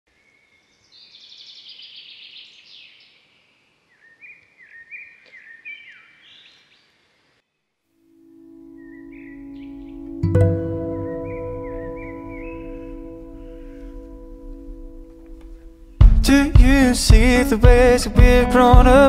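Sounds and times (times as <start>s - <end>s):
songbirds singing and chirping: 0.1s - 7.4s, 8.7s - 17.5s
sustained music chord: 8.0s - 16.0s.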